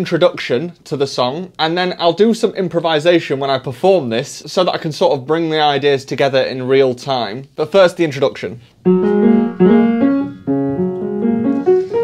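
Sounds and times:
digital piano playing: 8.8s - 12.0s.

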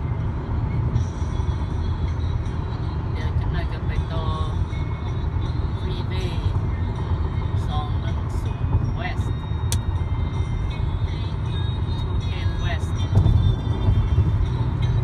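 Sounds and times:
car road and engine rumble: 0.0s - 15.0s.

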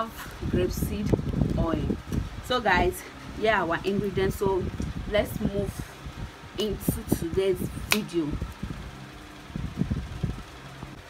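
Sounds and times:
low mechanical hum: 0.0s - 11.0s.

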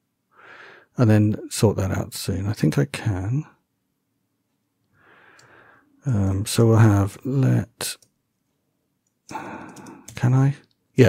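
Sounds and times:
soft breath: 0.3s - 0.9s, 4.9s - 6.0s, 9.3s - 10.2s
computer keyboard clicks: 9.3s - 10.3s.

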